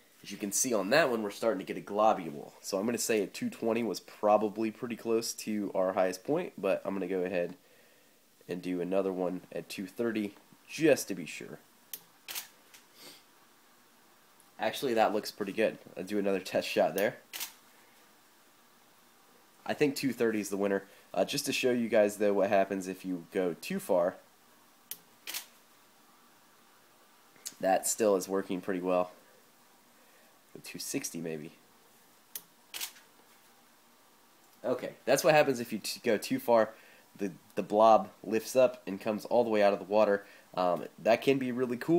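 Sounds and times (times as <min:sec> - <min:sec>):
camera shutter clicks: 0:12.3 - 0:12.8, 0:17.3 - 0:17.6, 0:24.9 - 0:25.5, 0:32.4 - 0:33.0.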